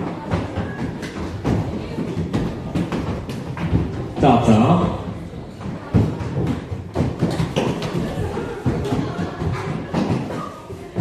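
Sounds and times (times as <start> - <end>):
chairs being knocked: 0.0 - 11.0
footsteps running on wooden floor: 0.0 - 11.0.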